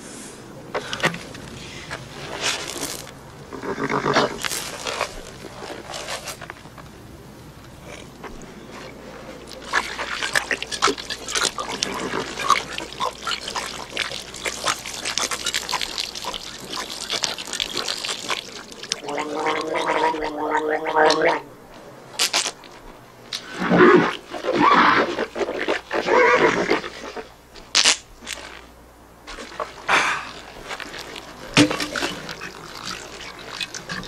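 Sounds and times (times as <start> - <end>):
man gulping water: 7.6 - 21.5, 29.3 - 34.0
water being spat: 9.4 - 20.4, 29.3 - 34.0
man gargling: 18.4 - 21.5, 29.8 - 30.5.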